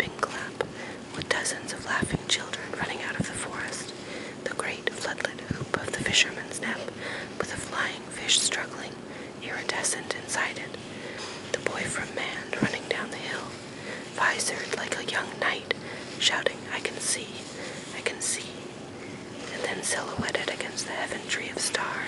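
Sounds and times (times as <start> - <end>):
person whispering: 0.0 - 18.7, 19.4 - 22.0.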